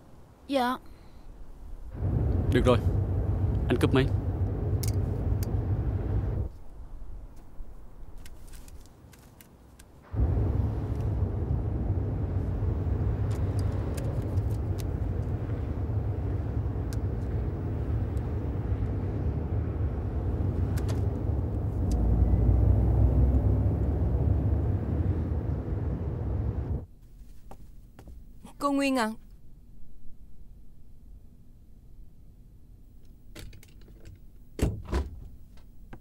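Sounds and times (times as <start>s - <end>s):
car engine rumble: 1.5s - 8.5s, 10.0s - 26.9s
road noise inside car: 1.8s - 8.9s, 10.0s - 26.9s.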